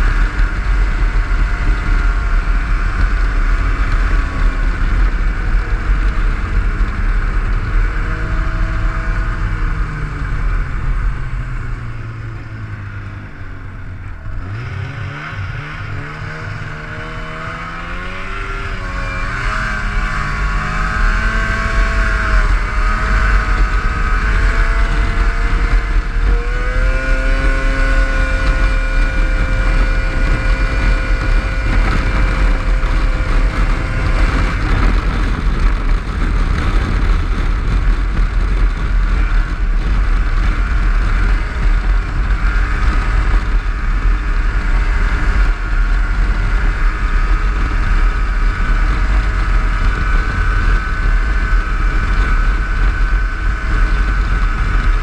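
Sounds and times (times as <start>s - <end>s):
snowmobile engine running: 0.0s - 55.0s.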